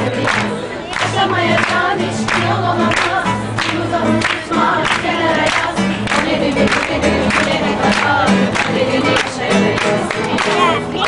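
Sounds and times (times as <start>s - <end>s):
group singing: 0.0s - 11.0s
guitar accompaniment: 0.0s - 11.0s.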